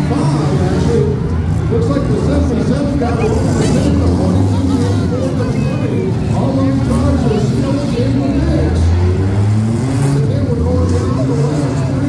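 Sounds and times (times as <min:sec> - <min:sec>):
car engines droning: 0:00.0 - 0:12.0
crowd chatter: 0:00.0 - 0:12.0.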